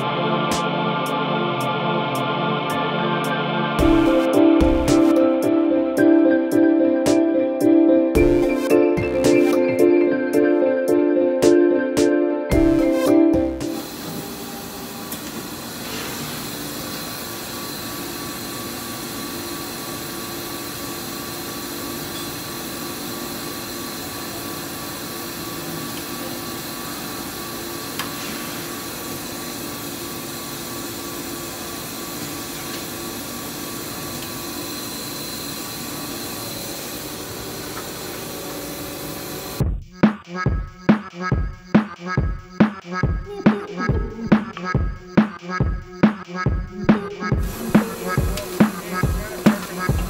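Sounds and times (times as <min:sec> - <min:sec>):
machinery hum and hiss: 0:13.7 - 0:39.6, 0:47.4 - 0:50.0.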